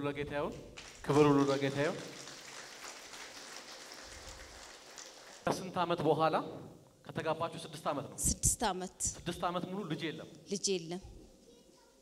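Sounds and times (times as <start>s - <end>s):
faint hiss-like background noise: 0.0s - 12.0s.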